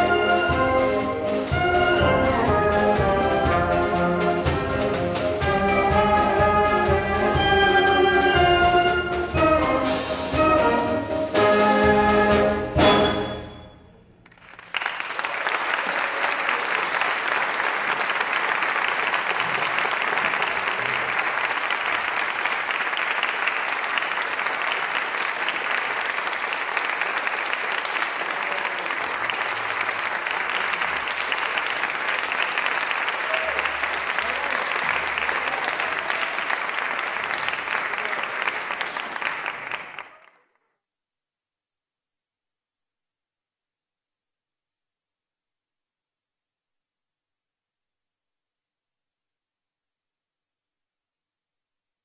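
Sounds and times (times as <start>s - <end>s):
audience applauding: 14.2s - 40.6s.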